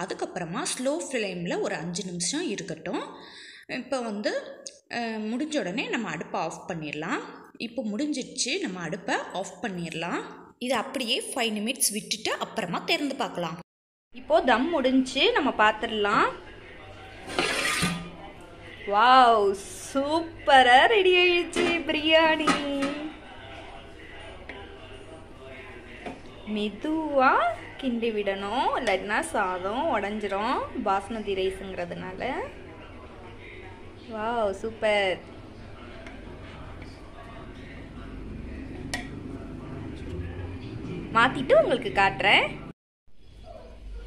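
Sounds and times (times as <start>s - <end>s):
metal pot lid clink and scrape: 17.2s - 18.1s.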